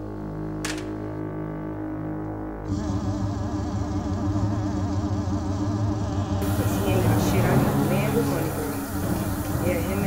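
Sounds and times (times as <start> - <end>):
low synthesizer drone: 0.0 - 10.0.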